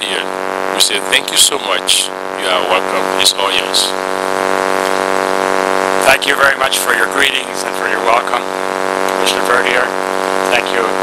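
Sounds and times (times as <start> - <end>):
electrical buzzing hum: 0.0 - 11.0.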